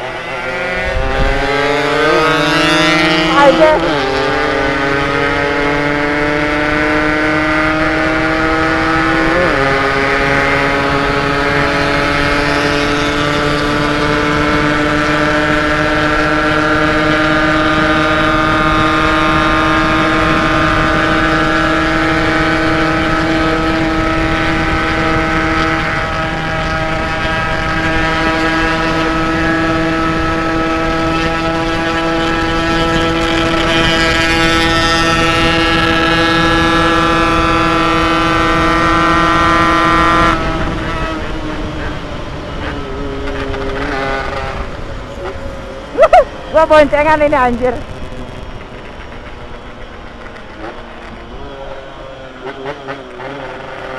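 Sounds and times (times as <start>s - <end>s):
motorcycle engine at high revs: 0.0s - 53.9s
rushing wind: 0.0s - 53.9s.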